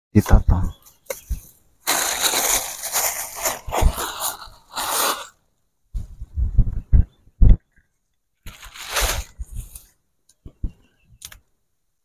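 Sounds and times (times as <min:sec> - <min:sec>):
dry leaves crunching and rustling: 0:01.8 - 0:05.3, 0:08.5 - 0:09.3.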